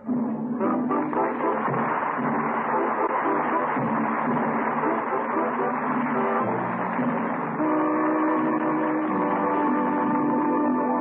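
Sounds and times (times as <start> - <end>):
orchestral sustained chords: 0.1 - 11.0.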